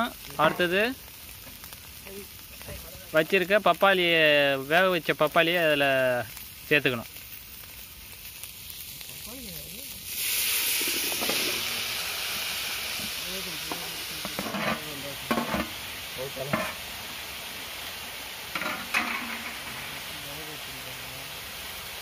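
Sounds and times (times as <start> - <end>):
hot oil sizzling in a pan: 0.0 - 22.0
metal plate knocking on pan: 14.3 - 15.7, 16.5 - 16.8.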